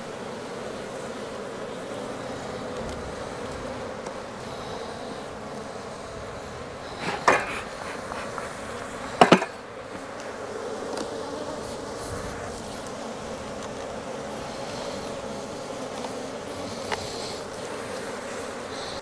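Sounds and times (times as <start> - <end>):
bees buzzing: 0.0 - 19.0.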